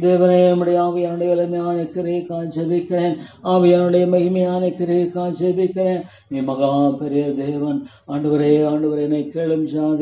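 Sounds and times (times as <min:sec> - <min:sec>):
man praying in chant-like tone: 0:00.0 - 0:10.0.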